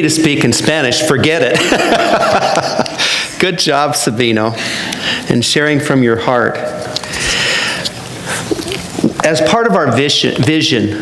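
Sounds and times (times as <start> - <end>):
man breathing in: 3.0 - 3.4, 4.6 - 5.3, 7.0 - 8.5.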